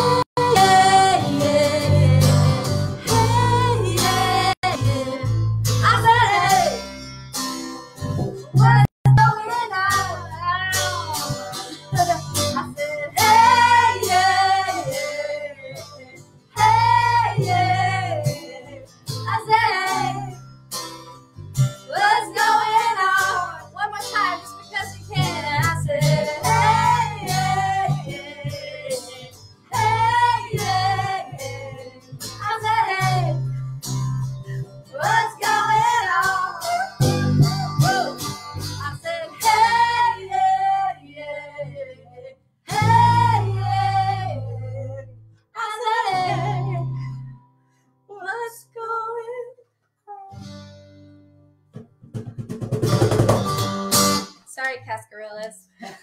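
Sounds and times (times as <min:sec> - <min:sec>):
women singing in chorus: 0:00.0 - 0:06.8, 0:12.6 - 0:20.3, 0:21.9 - 0:23.8, 0:24.7 - 0:33.4, 0:34.9 - 0:37.2, 0:38.8 - 0:47.1
strummed acoustic guitar: 0:00.0 - 0:45.0, 0:50.3 - 0:55.4.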